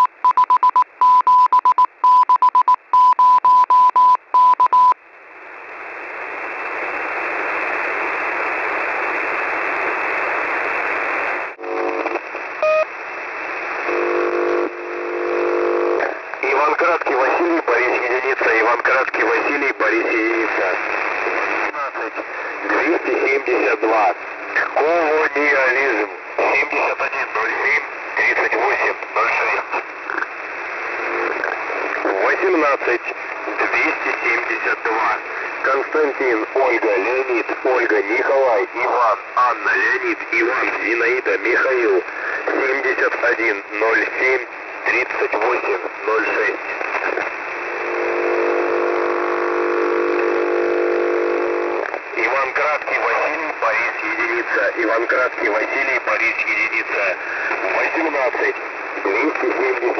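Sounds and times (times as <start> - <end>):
radio hiss: 5.6 - 59.9
steady pitched buzz: 13.7 - 16.0, 47.4 - 51.8.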